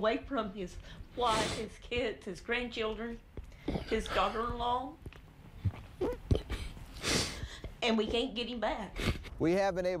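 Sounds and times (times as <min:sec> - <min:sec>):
woman sobbing: 0:03.7 - 0:04.8, 0:05.9 - 0:07.7.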